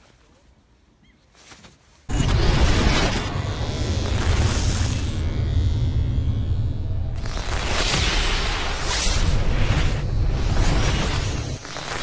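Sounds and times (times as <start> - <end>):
rumbling whooshing cinematic effect: 2.1 - 12.0.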